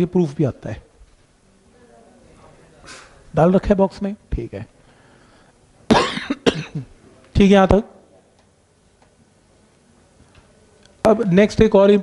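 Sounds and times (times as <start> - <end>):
person coughing: 5.9 - 6.9.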